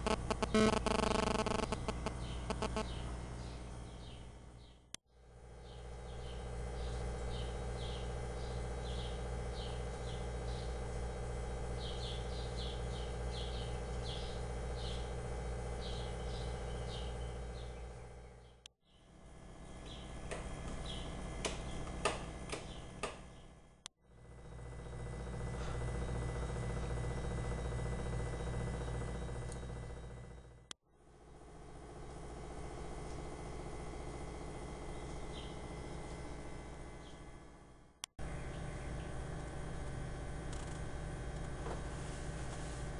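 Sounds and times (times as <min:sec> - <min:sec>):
steady low hum: 0:00.0 - 0:42.9
birds chirping: 0:11.8 - 0:15.2, 0:15.8 - 0:19.0, 0:34.9 - 0:35.6.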